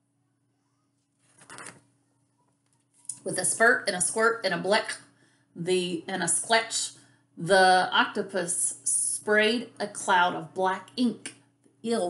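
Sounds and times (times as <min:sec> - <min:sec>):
book page turning: 0:01.0 - 0:01.8.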